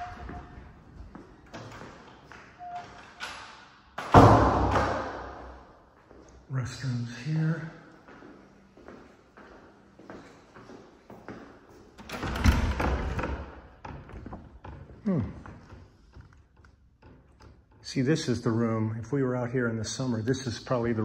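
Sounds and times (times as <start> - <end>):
footsteps along a hallway: 0.0 - 3.2, 5.4 - 12.1
door pushing open with a thud: 4.0 - 5.4, 12.0 - 14.4.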